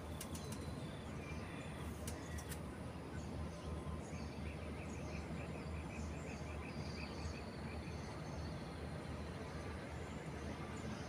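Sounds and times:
sharp clicks: 0.2s - 0.7s, 2.0s - 2.6s
faint bird chirps: 0.2s - 11.0s.

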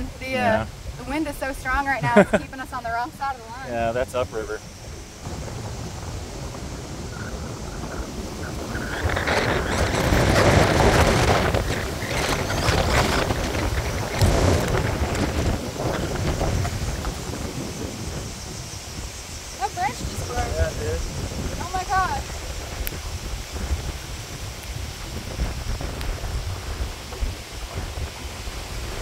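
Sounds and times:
choppy river water: 0.0s - 29.0s
strong wind gusting on microphone: 0.0s - 29.0s.

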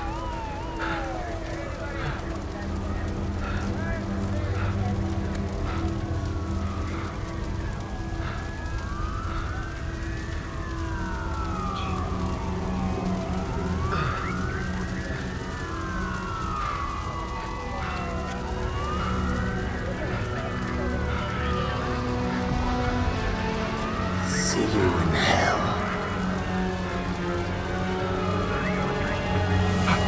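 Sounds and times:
emergency vehicle sirens wailing: 0.0s - 30.0s.

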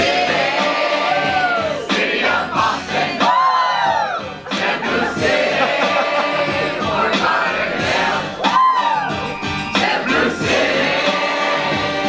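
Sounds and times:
group of people singing: 0.0s - 8.9s, 9.6s - 12.0s.

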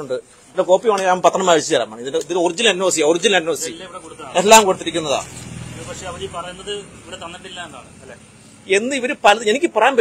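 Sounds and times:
vehicle engine rumbling: 2.9s - 9.4s.

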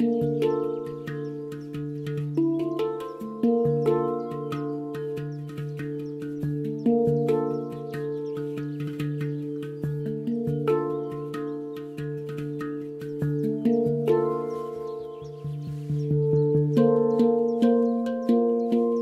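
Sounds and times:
handpan notes: 0.0s - 19.0s.

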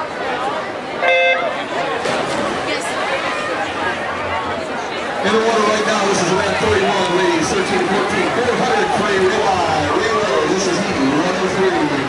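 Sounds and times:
crowd voices hubbub: 0.0s - 12.0s.

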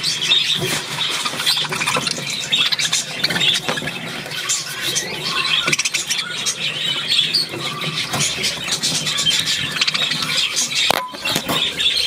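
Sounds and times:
budgerigars chattering: 0.0s - 12.0s.

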